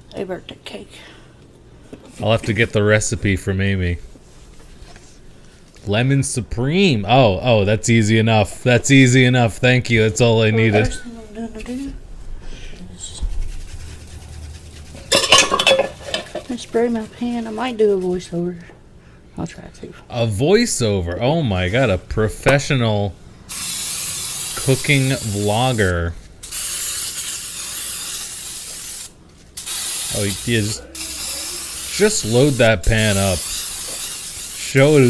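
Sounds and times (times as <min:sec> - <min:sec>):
steady low hum: 0:00.0 - 0:33.8
kitchen items being moved: 0:14.9 - 0:16.6
aerosol spray hissing: 0:23.5 - 0:35.0.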